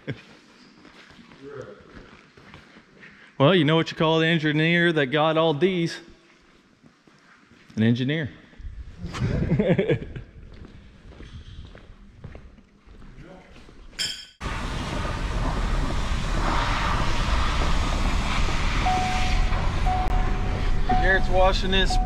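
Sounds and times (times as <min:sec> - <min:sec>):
people laughing: 0:09.1 - 0:10.3
engine rumble inside truck cab: 0:14.4 - 0:22.0.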